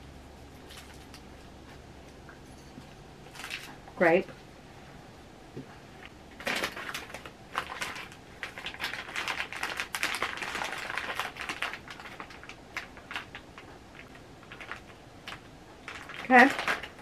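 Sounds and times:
plastic wrapper crinkling: 3.3 - 3.8, 6.4 - 17.0.

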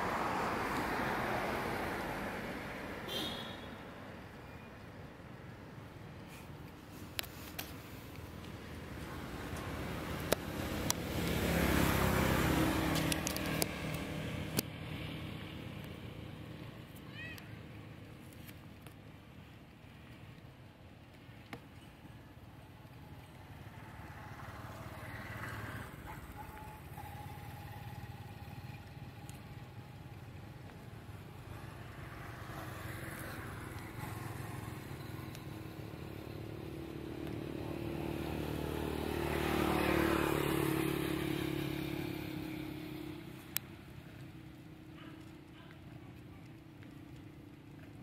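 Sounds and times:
vehicle engine passing by: 8.8 - 16.6, 23.4 - 45.7.

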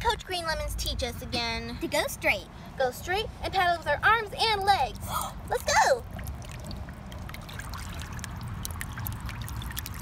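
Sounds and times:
water sloshing and splashing: 4.4 - 10.0.

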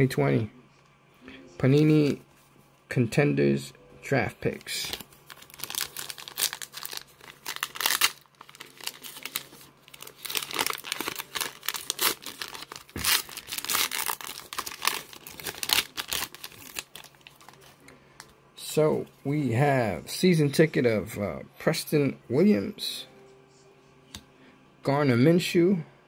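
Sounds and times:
plastic wrapper tearing and crinkling: 4.6 - 17.8.

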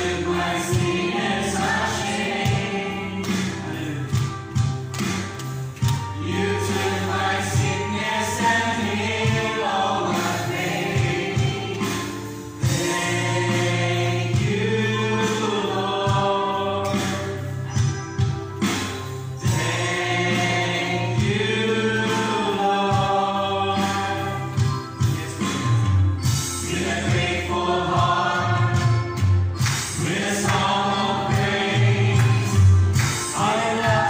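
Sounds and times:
choir singing gospel song: 0.0 - 34.0
electronic keyboard accompaniment: 0.0 - 34.0.

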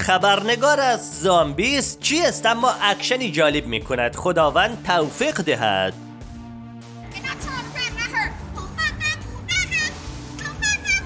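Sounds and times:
low music backing: 0.0 - 11.0
high child-like voice: 7.4 - 11.0.

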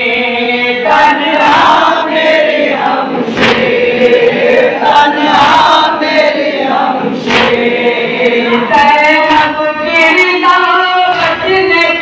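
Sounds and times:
men chanting a lament: 0.0 - 12.0
sharp strikes: 3.3 - 4.3, 7.2 - 7.8.

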